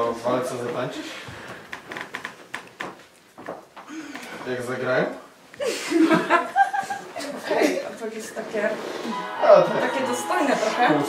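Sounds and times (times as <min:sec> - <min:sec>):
people laughing: 0:05.6 - 0:07.9
people talking: 0:09.4 - 0:11.0.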